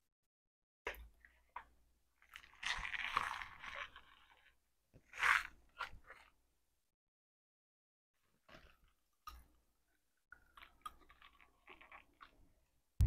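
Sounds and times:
crunchy candy being chewed: 0:01.3 - 0:06.4, 0:10.3 - 0:12.6.

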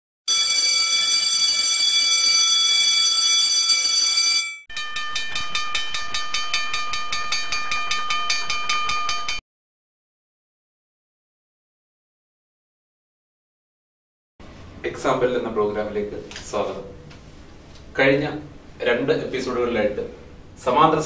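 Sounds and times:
alarm clock ringing: 0:00.3 - 0:09.4
hand bell ringing: 0:00.3 - 0:09.4.

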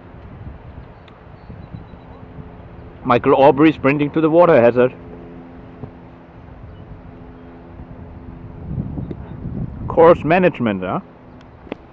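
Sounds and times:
distant engine hum: 0:00.0 - 0:11.9
wind noise on microphone: 0:00.0 - 0:11.9.

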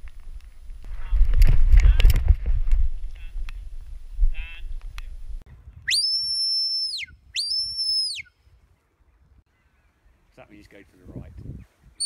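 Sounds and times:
wind rumble on microphone: 0:00.0 - 0:06.0, 0:10.9 - 0:12.0
shepherd's whistle: 0:05.8 - 0:08.4.

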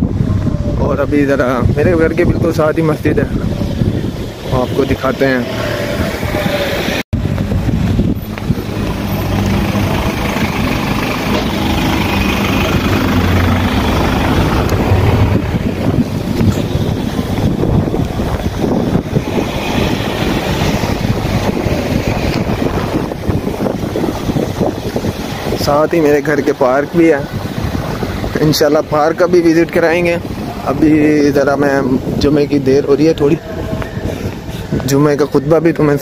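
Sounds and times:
street traffic: 0:00.0 - 0:36.0
wind on phone microphone: 0:00.0 - 0:36.0.

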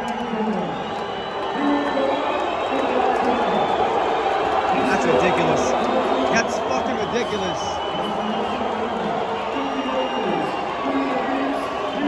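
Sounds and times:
crowd cheering and chattering: 0:00.0 - 0:12.0.

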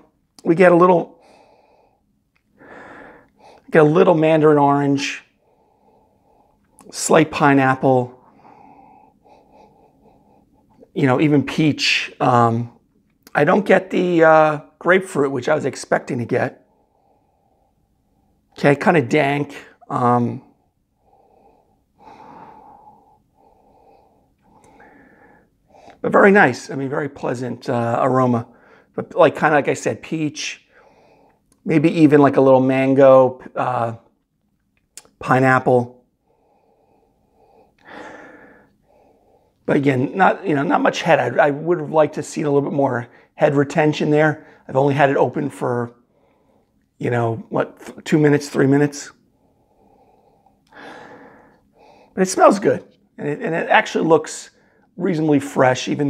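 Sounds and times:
man sniffing: 0:37.0 - 0:39.6, 0:49.9 - 0:52.2.

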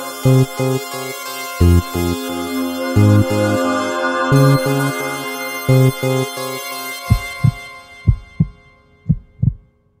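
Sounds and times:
hip-hop music: 0:00.0 - 0:08.5
heartbeat thumps: 0:07.1 - 0:09.7.

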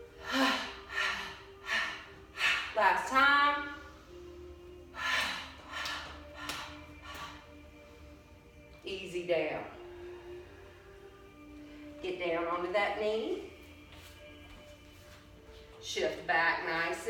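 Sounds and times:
person breathing forcefully: 0:00.0 - 0:02.8, 0:04.9 - 0:07.8
soft background music: 0:00.0 - 0:17.0.

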